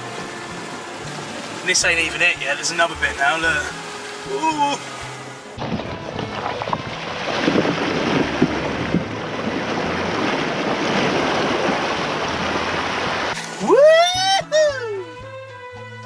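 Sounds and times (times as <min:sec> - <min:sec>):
water rushing against car: 0:00.0 - 0:14.0.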